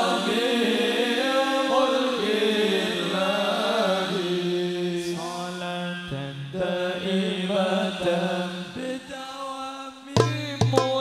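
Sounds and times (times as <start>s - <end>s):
person chanting devotional song: 0.0s - 11.0s.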